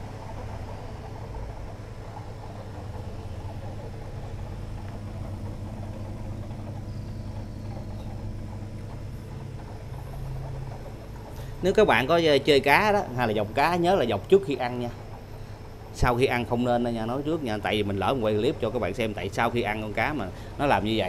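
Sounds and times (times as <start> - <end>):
water-filter pump hum: 0.0 - 21.0.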